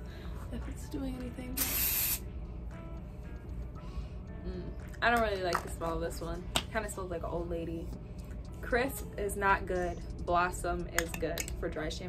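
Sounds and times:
faint background music: 0.0 - 12.0
aerosol can spray hiss: 1.6 - 2.2.

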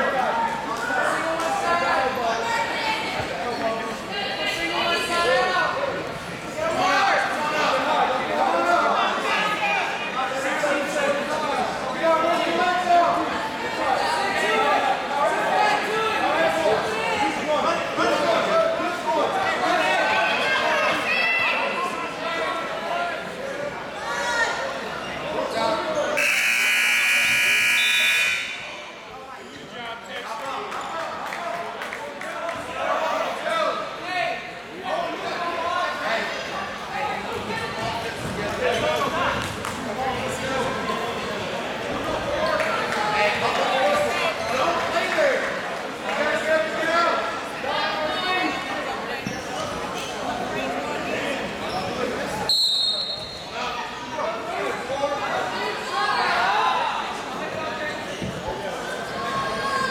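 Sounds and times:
crowd voices: 0.0 - 59.9
spectators talking and calling out: 0.0 - 59.9
scoreboard buzzer tone: 26.2 - 28.7
referee's whistle blast: 26.2 - 28.9, 52.5 - 53.4.

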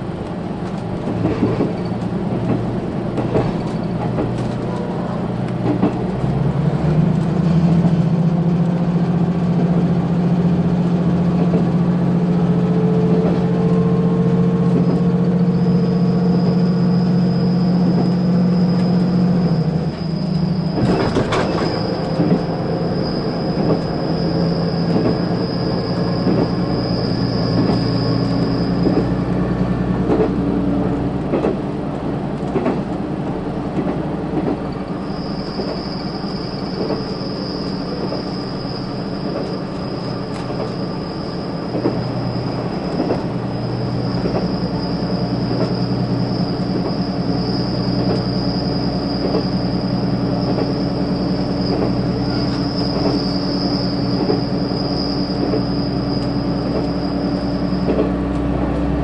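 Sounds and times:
train engine drone: 0.0 - 59.0
wheels clicking over rail joints: 30.0 - 33.0, 50.3 - 59.0.

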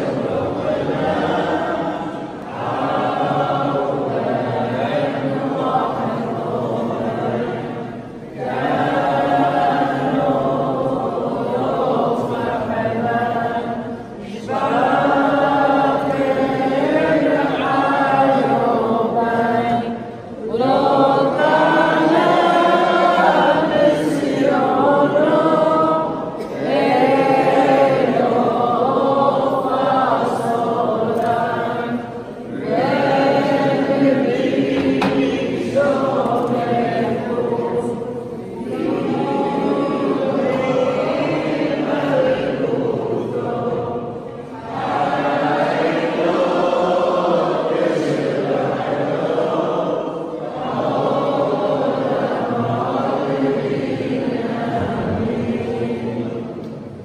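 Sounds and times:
group singing unaccompanied: 0.0 - 57.0.

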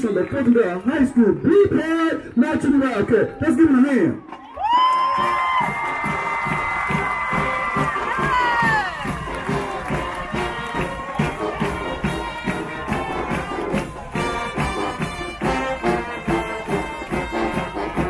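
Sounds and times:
crowd cheering: 3.2 - 18.0
long high held shout: 4.6 - 13.7
marching drumline beat: 5.1 - 18.0.

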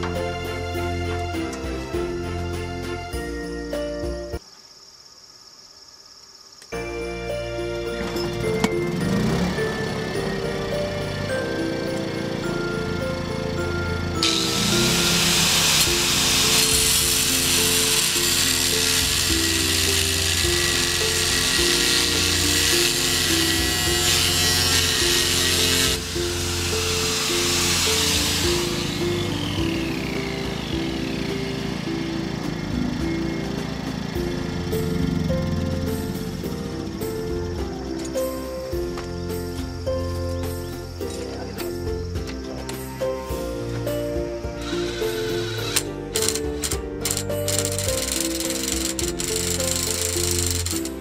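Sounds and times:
electric power tool running: 7.9 - 37.4, 44.4 - 51.0
background music with beat: 36.0 - 51.0.

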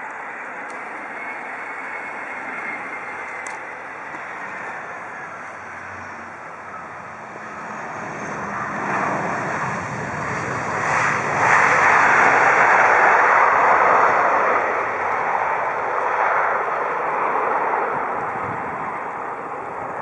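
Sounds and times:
jet engines rushing: 0.0 - 20.0.

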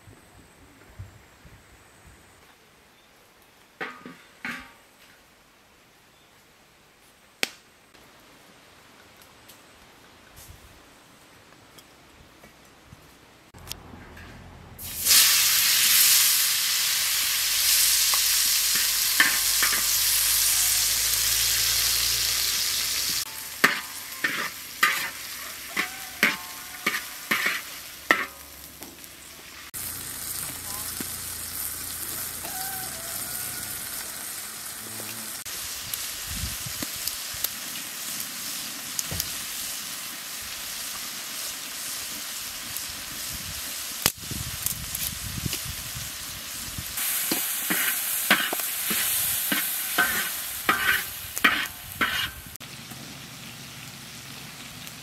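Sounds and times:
tomatoes sizzling in hot oil: 14.8 - 55.0.

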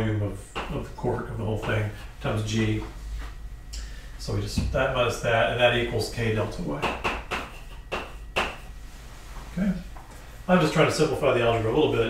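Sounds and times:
chalk tapping and scraping: 6.8 - 9.5.

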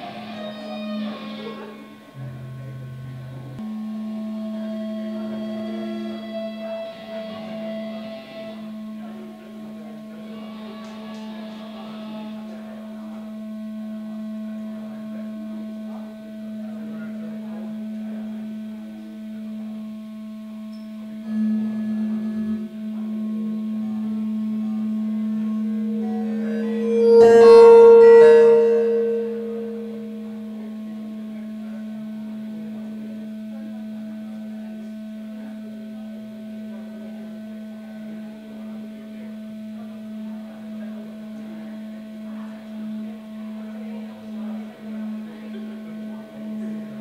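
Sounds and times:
electric guitar drone: 0.0 - 34.4.

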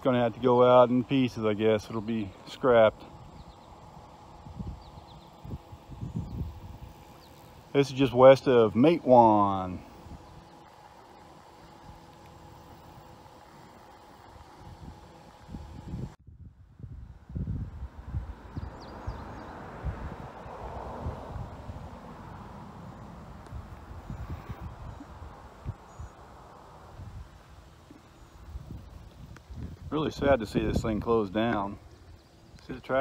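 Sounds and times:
faint steady hum: 0.0 - 33.0
wind buffeting microphone: 3.0 - 8.3, 14.2 - 26.1, 26.8 - 33.0.

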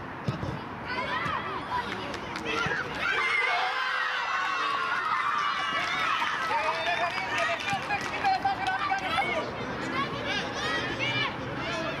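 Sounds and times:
hubbub of players and onlookers: 0.0 - 12.0
children shouting: 2.5 - 6.7.

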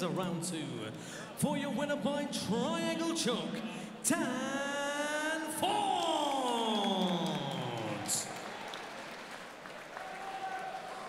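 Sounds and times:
crowd applause and cheering: 5.6 - 11.0.

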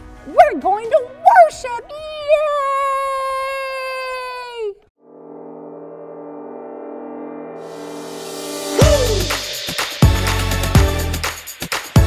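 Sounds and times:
high-pitched cheer: 0.4 - 4.8, 8.8 - 9.6.

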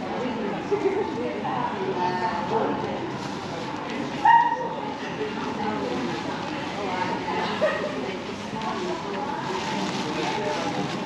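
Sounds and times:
chatter of pedestrians: 0.0 - 11.0.

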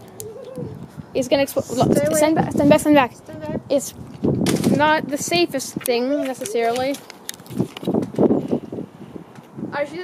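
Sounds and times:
camera handling rustle: 5.8 - 9.6.

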